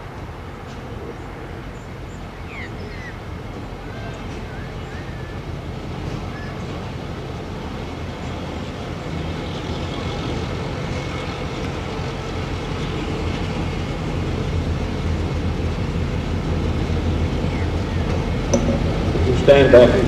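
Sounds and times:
diesel locomotive engine rumbling: 0.0 - 20.0.

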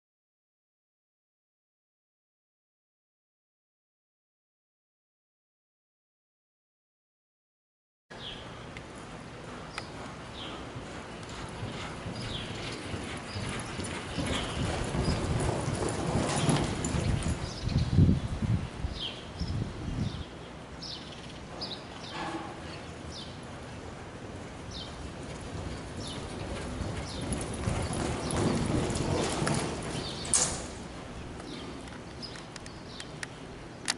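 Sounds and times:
hoofbeats on soft dirt: 8.9 - 17.9, 20.9 - 32.3.

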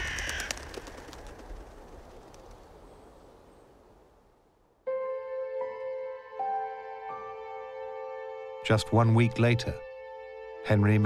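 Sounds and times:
wings flapping: 0.0 - 3.4.

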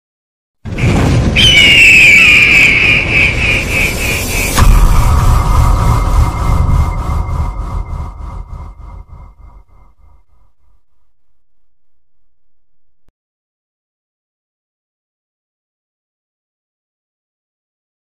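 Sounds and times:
deep boom: 0.7 - 12.1
shrill high pulsing tone: 1.4 - 10.5
low ringing tone and rumble: 4.5 - 13.1.

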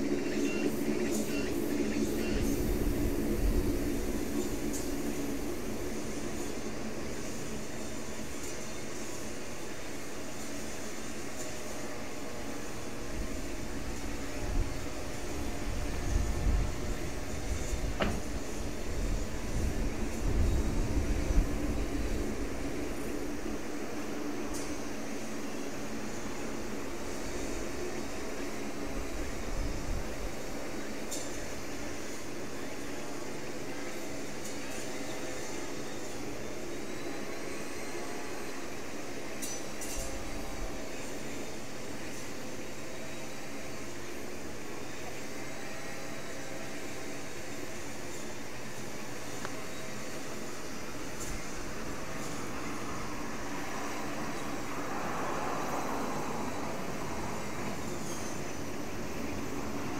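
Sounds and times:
distant aircraft hum: 0.0 - 59.9
faint steady tones: 0.0 - 59.9.

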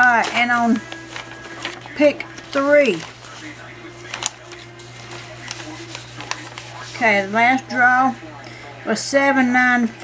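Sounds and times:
paper crinkles: 0.0 - 7.7
paper rustling: 0.0 - 8.0.

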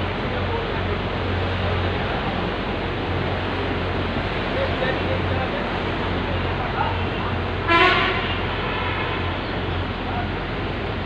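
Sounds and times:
street traffic hum: 0.0 - 11.0
vehicle horn honk: 7.7 - 9.2.

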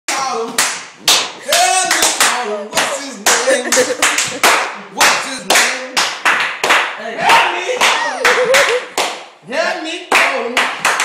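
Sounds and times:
sharp hand claps: 0.1 - 9.3, 10.1 - 11.0.

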